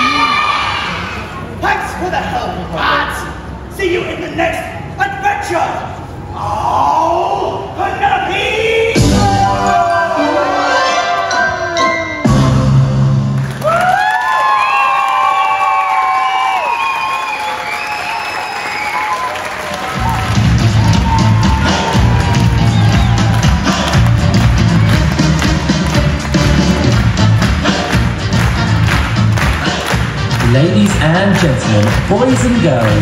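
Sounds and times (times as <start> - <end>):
audience applauding: 13.3 - 33.0
audience cheering and whooping: 13.4 - 27.0
music with heavy beat: 20.0 - 33.0.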